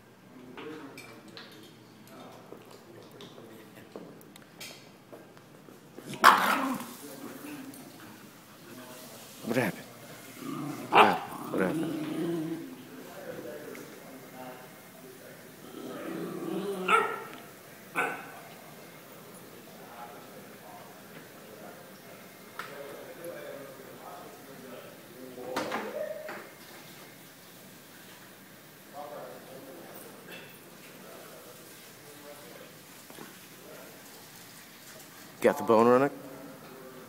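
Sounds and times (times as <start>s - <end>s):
dog barking sharply: 6.1s - 6.9s, 10.9s - 11.4s, 16.9s - 17.3s, 18.0s - 18.4s
dog growling low: 10.3s - 12.8s, 15.6s - 17.3s.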